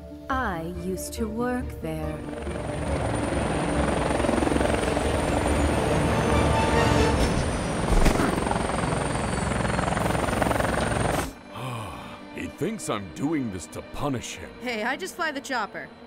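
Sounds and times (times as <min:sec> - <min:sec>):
helicopter rotor chopping: 0:02.1 - 0:11.5
high turbine whine: 0:02.2 - 0:11.5.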